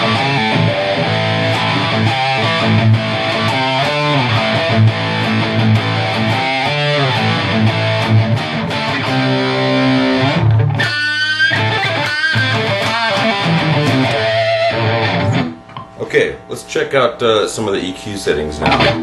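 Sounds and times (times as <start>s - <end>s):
distorted electric guitar riffs: 0.0s - 19.0s.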